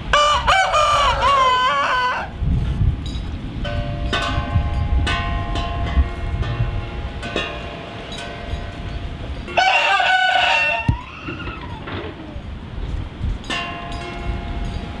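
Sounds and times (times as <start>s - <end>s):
rooster crowing: 0.1s - 2.3s, 9.6s - 11.9s.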